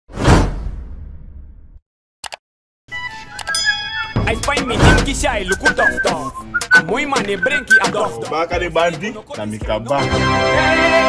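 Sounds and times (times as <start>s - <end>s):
music with chiming tones: 3.2s - 5.6s.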